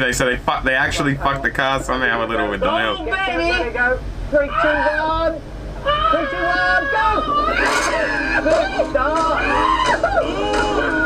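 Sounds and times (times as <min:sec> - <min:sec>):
men talking and exclaiming: 0:00.0 - 0:11.0
car engine hum: 0:02.3 - 0:11.0.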